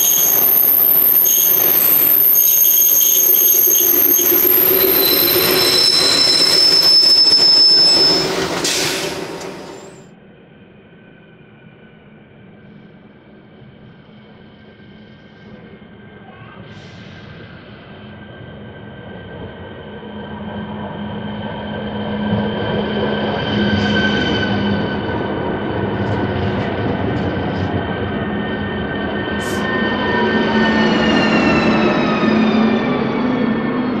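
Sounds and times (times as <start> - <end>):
train traction motor whine: 0.0 - 10.0.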